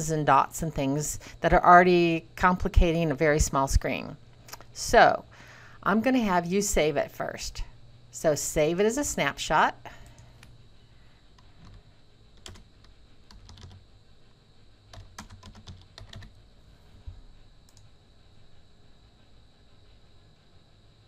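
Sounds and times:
typing on keyboard: 0:12.4 - 0:13.8, 0:14.9 - 0:16.4.

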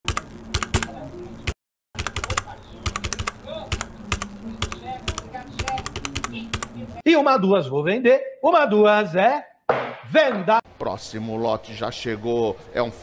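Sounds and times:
keyboard key clicks: 0:02.0 - 0:06.7.

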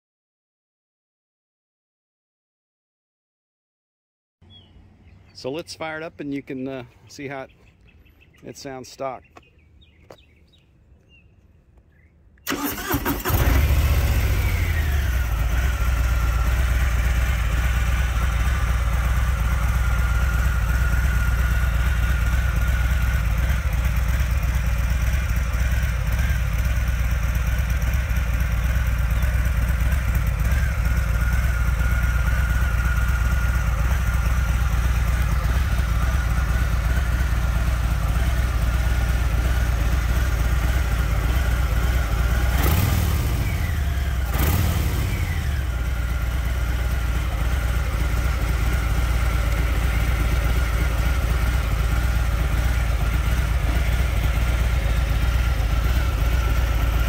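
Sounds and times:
motorcycle engine idling: 0:12.4 - 0:57.0.

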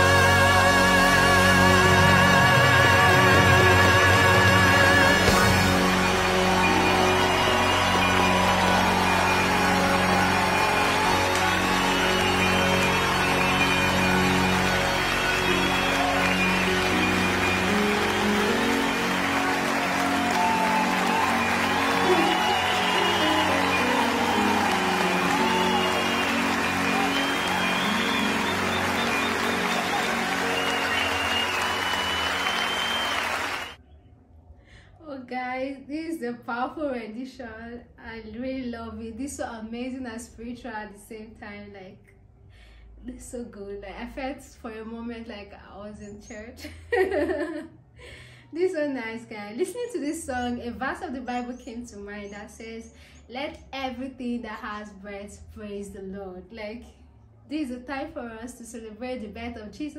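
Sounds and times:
audience applauding: 0:00.0 - 0:33.8
music closing chords: 0:00.0 - 0:33.8.

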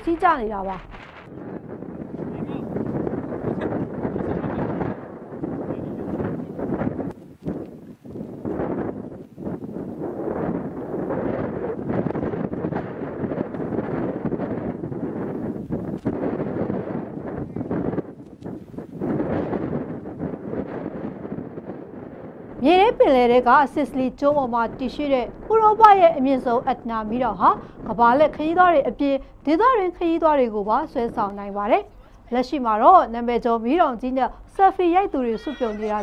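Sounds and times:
volcano eruption rushing noise: 0:00.0 - 0:31.2.

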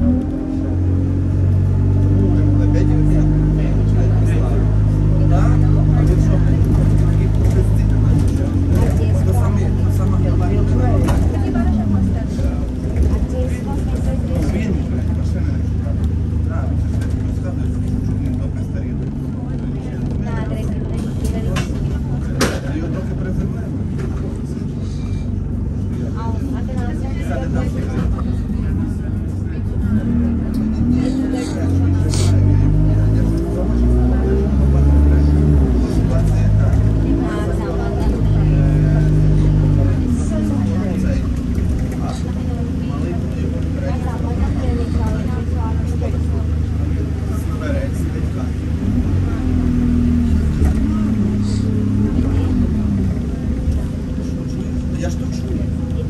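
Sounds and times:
bus engine and road noise: 0:00.0 - 0:56.0.

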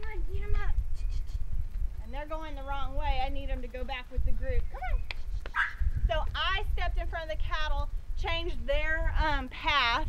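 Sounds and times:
woman talking: 0:00.0 - 0:01.3, 0:02.0 - 0:05.0, 0:06.1 - 0:10.0
wind rumble on microphone: 0:00.0 - 0:10.0.

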